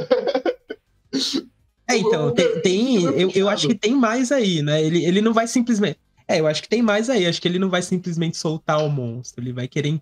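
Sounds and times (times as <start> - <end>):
man speaking: 1.9 - 10.0
brief cough: 2.3 - 2.8.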